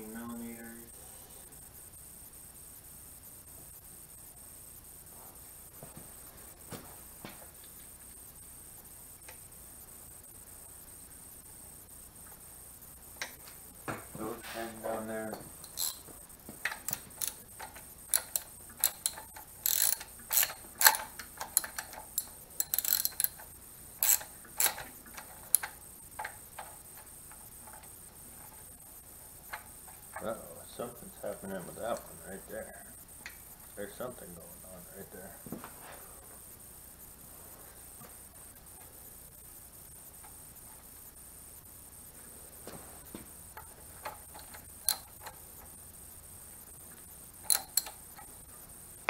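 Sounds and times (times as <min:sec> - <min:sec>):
fast ratchet clicks: 0:15.6 - 0:16.1, 0:16.7 - 0:27.5, 0:43.6 - 0:45.4, 0:47.4 - 0:48.2
ratchet and socket clinking: 0:15.6 - 0:16.1, 0:16.7 - 0:25.8, 0:44.0 - 0:45.2, 0:47.4 - 0:48.0.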